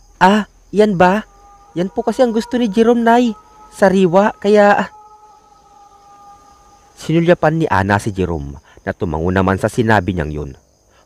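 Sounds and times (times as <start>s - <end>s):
two steady held tones: 0.2s - 8.6s.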